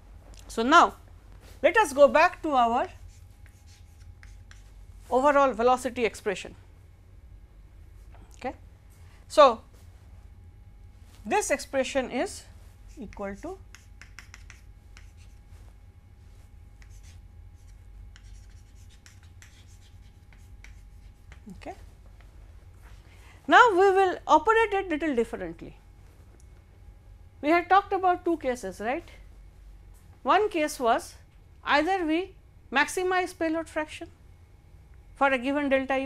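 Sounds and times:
chalk scratching on blackboard: 2.8s - 4.8s, 12.9s - 15.4s, 16.8s - 21.5s.

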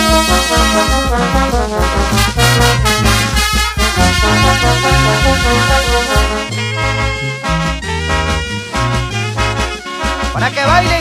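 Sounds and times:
sousaphone bass: 0.0s - 11.0s
trumpets and trombones: 0.0s - 11.0s.

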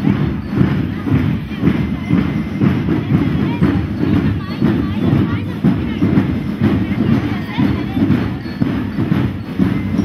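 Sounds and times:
parade drums beating: 0.0s - 10.0s
people's voices: 0.0s - 10.0s.

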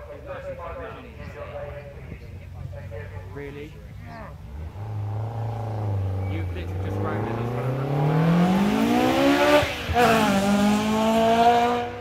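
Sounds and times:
car engine approaching: 0.0s - 12.0s.

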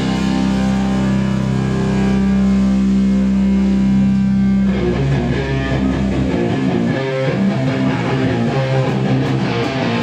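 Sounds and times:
electric guitar sustained chord: 0.0s - 10.0s.

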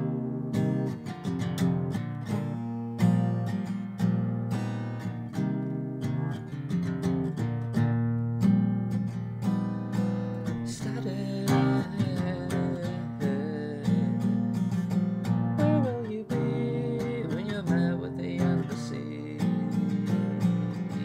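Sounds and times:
strummed acoustic guitar: 0.0s - 21.0s
person singing: 10.0s - 14.6s, 15.5s - 21.0s.

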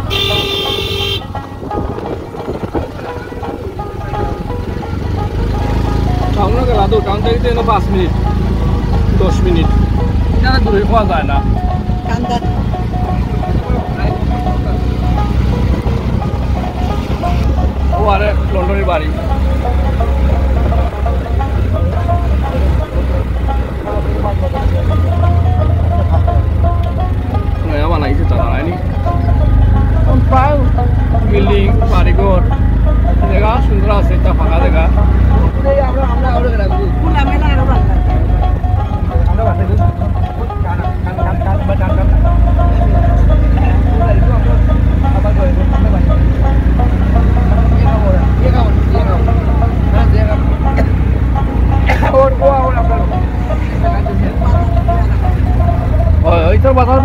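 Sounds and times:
vehicle rumble from inside: 0.0s - 57.0s
voices: 0.0s - 57.0s.

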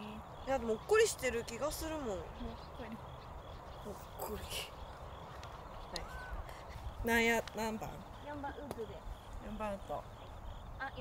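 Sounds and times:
crow cawing faintly: 0.0s - 11.0s.

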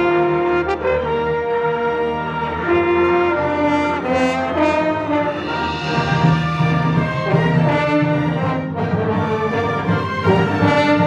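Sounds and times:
orchestra playing: 0.0s - 11.0s.

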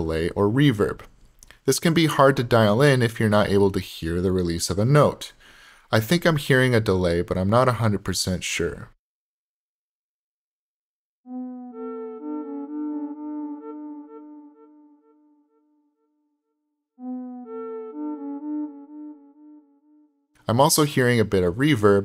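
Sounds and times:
synthesizer lead melody: 11.3s - 16.1s, 17.0s - 20.3s.

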